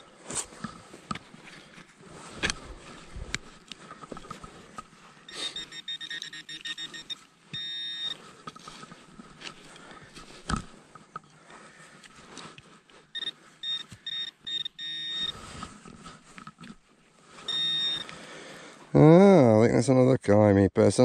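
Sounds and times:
high-pitched detector buzz: 5.3 - 8.2, 13.1 - 15.7, 17.4 - 18.1
quick detector beeps: 5.3 - 8.2, 13.1 - 15.5, 17.4 - 18.1.

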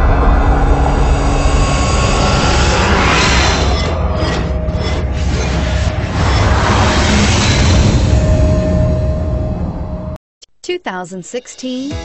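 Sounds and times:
deep rumbling swell: 0.0 - 10.2.

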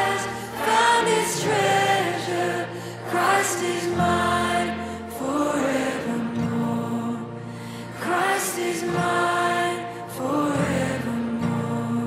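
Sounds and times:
worship song by band: 0.0 - 12.0.

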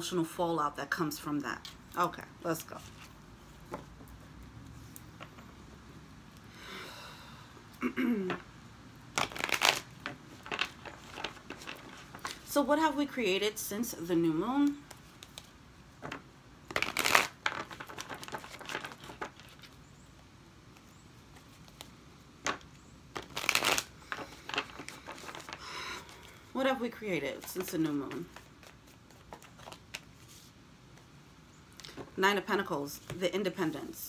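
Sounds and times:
cards being shuffled: 9.1 - 12.5, 14.6 - 19.8, 20.7 - 26.4, 27.3 - 31.1.

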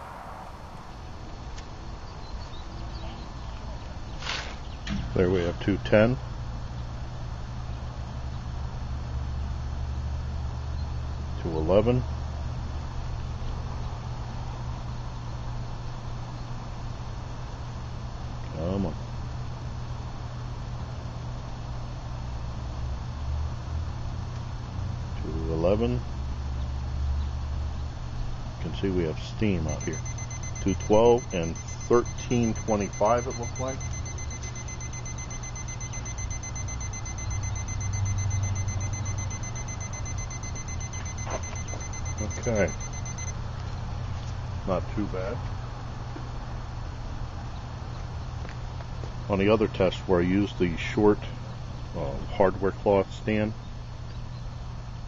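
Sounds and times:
thin high-pitched tone: 29.8 - 43.3.

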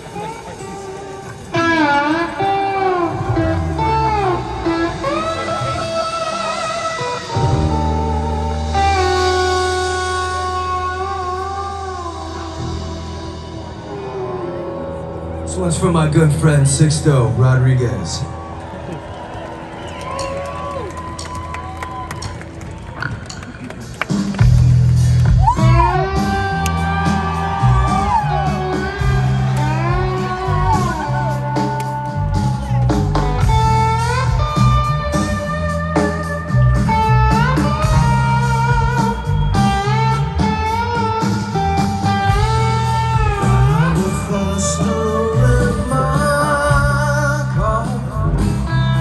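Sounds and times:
audience voices: 0.0 - 8.9, 11.8 - 35.4
slide guitar through pa: 0.0 - 18.4, 24.4 - 49.0
rock band with heavy bass and drums: 0.0 - 49.0.

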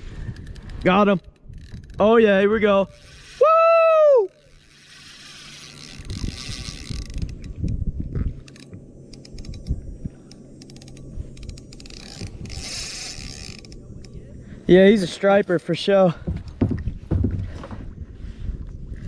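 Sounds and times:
fishing reel whirring and clicking: 0.0 - 15.8
person whooping: 3.4 - 4.4
low knocks: 16.2 - 17.9.

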